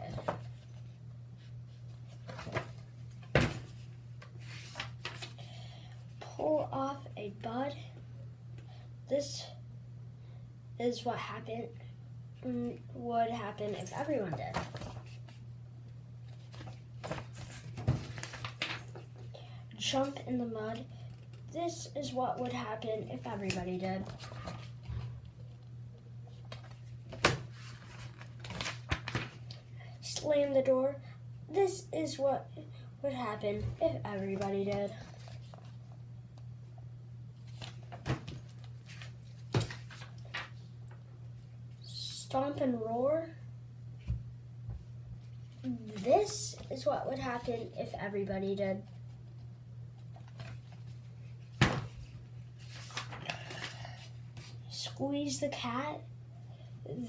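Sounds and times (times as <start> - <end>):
steady low hum: 0.0 - 57.0
paper pages rustling: 4.4 - 5.4, 14.5 - 15.4, 16.3 - 19.1, 26.3 - 29.5, 34.2 - 35.8, 37.4 - 40.6, 48.9 - 54.6.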